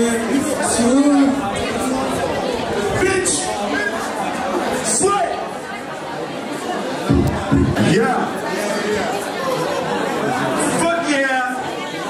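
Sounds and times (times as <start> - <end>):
crowd chatter: 0.0 - 12.0
low thumps: 7.1 - 8.0.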